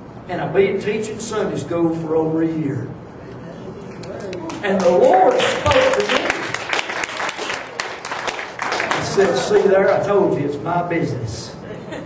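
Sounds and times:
crowd applauding: 4.4s - 10.1s.

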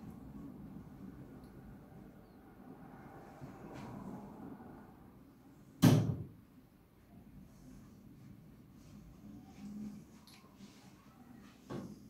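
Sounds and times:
faint low background noise: 0.0s - 12.0s.

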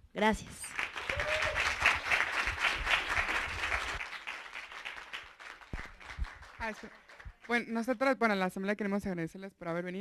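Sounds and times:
audience applauding: 0.7s - 7.5s.

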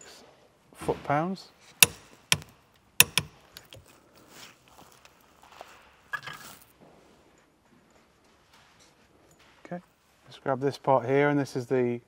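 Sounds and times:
torque wrench clicks: 1.8s - 3.8s
tools clattering: 1.8s - 4.0s.

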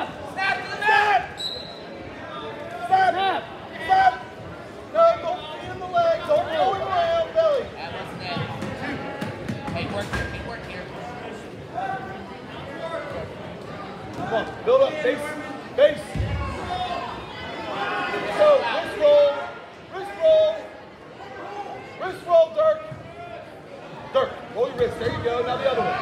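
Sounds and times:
voices shouting in gymnasium: 0.0s - 26.0s.

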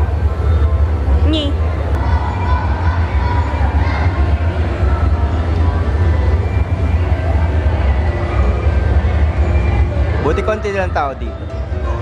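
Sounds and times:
low rumble of hall: 0.0s - 12.0s.

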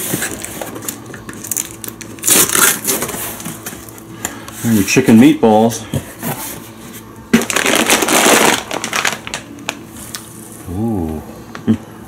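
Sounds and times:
plastic bag crinkling: 0.0s - 3.2s, 7.3s - 10.5s.

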